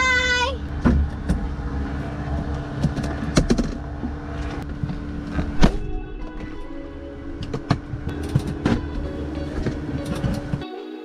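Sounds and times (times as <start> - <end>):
steady low cabin hum: 0.0 - 10.6.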